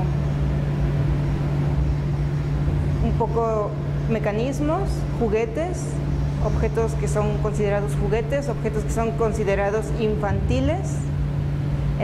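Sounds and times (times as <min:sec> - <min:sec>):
deep rumble: 0:00.0 - 0:12.0
low background hum: 0:00.0 - 0:12.0
speech: 0:03.0 - 0:11.0.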